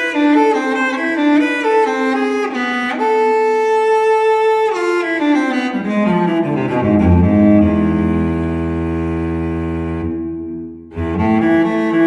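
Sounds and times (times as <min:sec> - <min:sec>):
cello bowed low note: 0:05.4 - 0:12.0.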